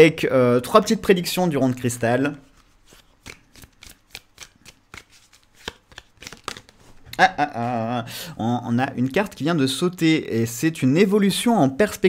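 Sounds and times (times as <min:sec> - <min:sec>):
cards being shuffled: 0:02.4 - 0:07.1.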